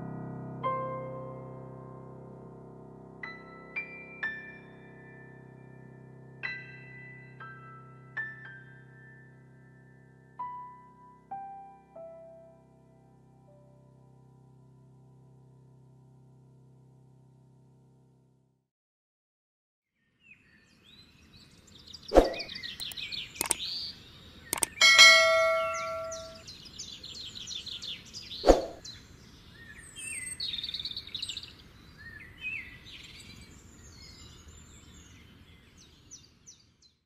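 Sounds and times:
small birds chirping: 0:20.3 - 0:36.7
bell-like ding: 0:24.6 - 0:26.4.

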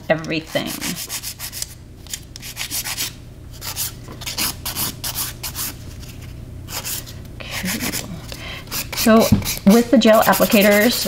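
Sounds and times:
nail file rasping: 0:08.7 - 0:11.0.

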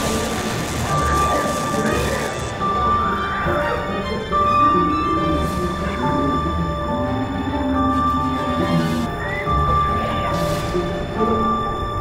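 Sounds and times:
roller coaster rumbling on track: 0:00.0 - 0:12.0
spooky ride soundtrack: 0:00.0 - 0:12.0
steady high tone: 0:00.0 - 0:12.0.

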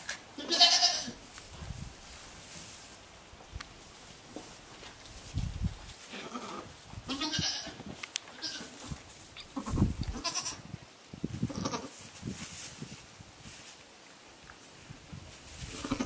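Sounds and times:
rustling in hay: 0:00.0 - 0:16.0
goats bleating: 0:00.4 - 0:01.2, 0:06.1 - 0:08.7, 0:09.4 - 0:10.6.

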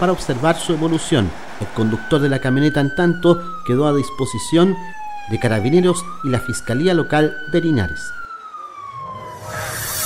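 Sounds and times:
emergency siren wailing: 0:00.8 - 0:10.0
rising whoosh: 0:09.0 - 0:10.0.

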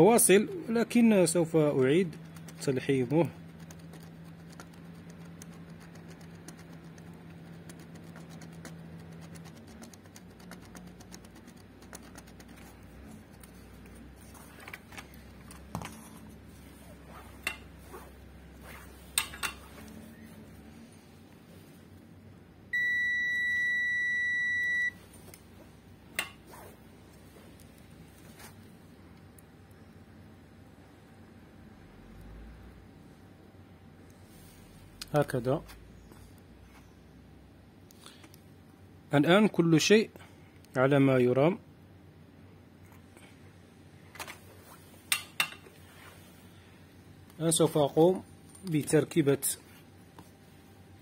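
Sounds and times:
multimeter continuity beep: 0:22.7 - 0:25.0.

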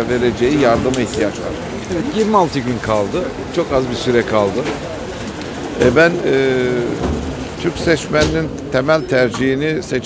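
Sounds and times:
person speaking: 0:00.1 - 0:05.1, 0:05.7 - 0:07.0.

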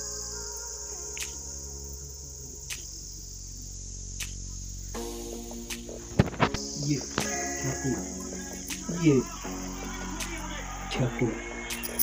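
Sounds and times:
crickets chirping: 0:00.0 - 0:12.0
music playing: 0:00.0 - 0:12.0.

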